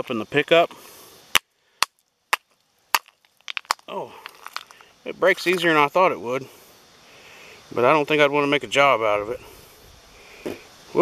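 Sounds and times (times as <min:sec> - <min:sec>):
rocks clacking together: 0:00.6 - 0:05.9
rock breaking clicks: 0:01.8 - 0:05.8.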